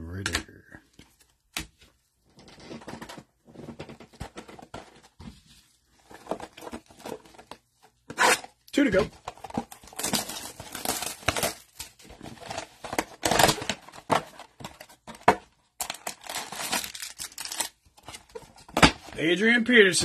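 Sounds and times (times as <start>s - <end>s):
cardboard tearing and rustling: 6.0s - 19.0s
foil packs crinkling: 8.8s - 13.8s, 15.8s - 17.8s.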